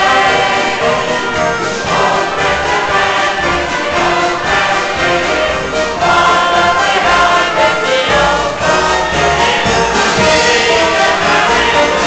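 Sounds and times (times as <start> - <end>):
group of people singing: 0.0 - 12.0
orchestra of strings and brass: 0.0 - 12.0.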